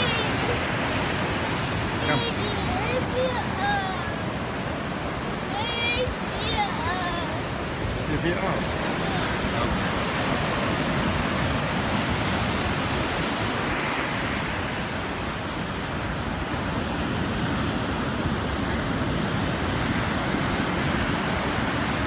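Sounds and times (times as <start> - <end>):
ocean surf breaking: 0.0 - 22.0.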